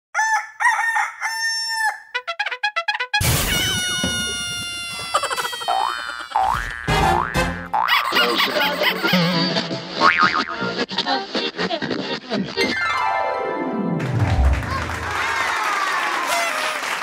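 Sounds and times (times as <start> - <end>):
clucking notes: 2.1 - 10.8
cartoon squawking calls: 3.2 - 6.6.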